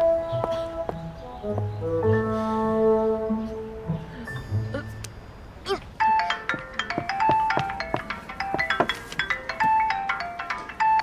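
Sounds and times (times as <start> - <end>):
mobile phone ringtone: 6.0 - 11.0.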